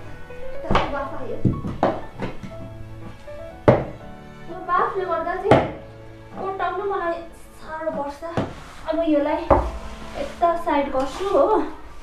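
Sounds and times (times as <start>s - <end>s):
background music: 0.0s - 12.0s
wooden paddle knocking metal pan: 9.4s - 11.3s.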